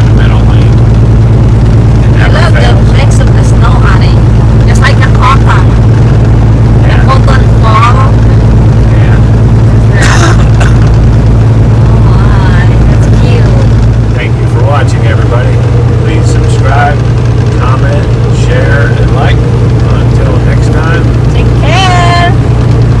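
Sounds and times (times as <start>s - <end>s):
truck engine and road drone: 0.0s - 23.0s.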